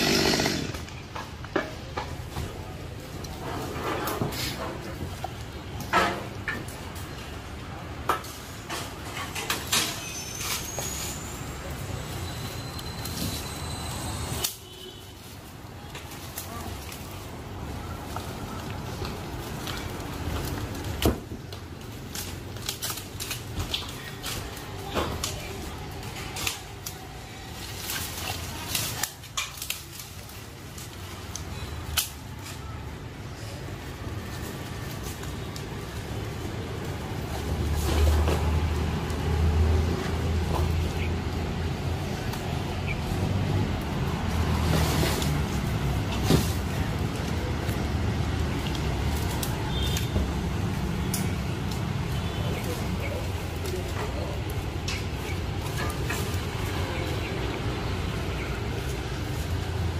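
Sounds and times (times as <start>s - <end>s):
branches snapping and leaves rustling: 12.2s - 32.9s, 33.9s - 59.9s.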